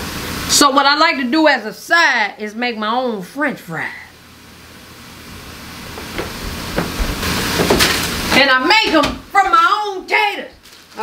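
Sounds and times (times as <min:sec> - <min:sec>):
plastic bag rustling: 0:06.5 - 0:09.0, 0:10.0 - 0:11.0.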